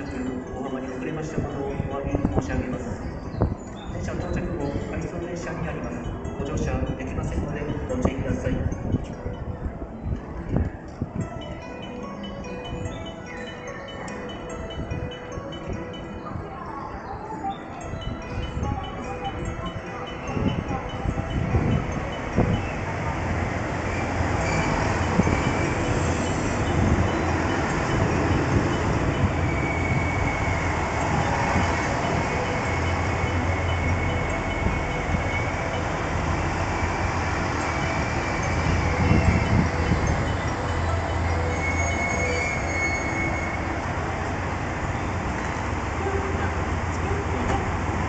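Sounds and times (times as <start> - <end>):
diesel train rumbling: 0.0 - 16.4, 17.0 - 48.0
wheels squealing: 21.3 - 48.0.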